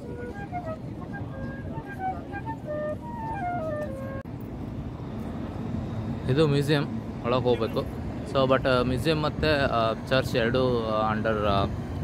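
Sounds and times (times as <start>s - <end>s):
wind instrument note: 0.0s - 4.3s
low outdoor rumble: 0.0s - 12.0s.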